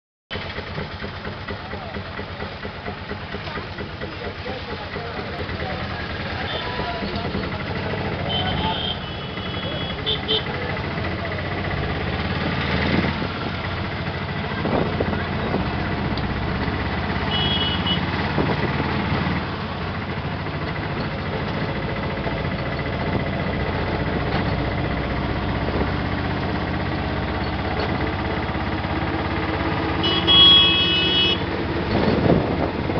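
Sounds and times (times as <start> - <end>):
vehicle engine running: 0.3 - 32.9
many voices talking: 1.4 - 11.9.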